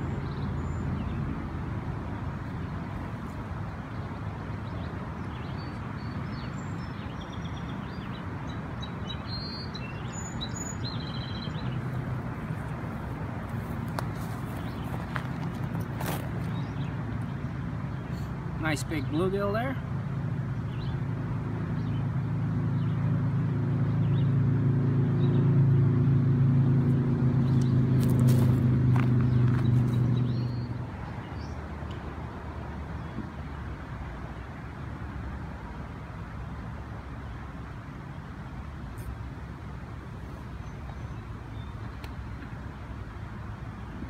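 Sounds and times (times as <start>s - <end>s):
outdoor background: 0.0s - 44.0s
vehicle engine running: 20.1s - 30.7s.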